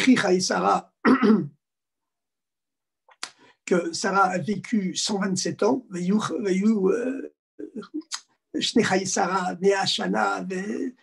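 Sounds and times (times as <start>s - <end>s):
man clearing his throat: 1.0s - 1.6s.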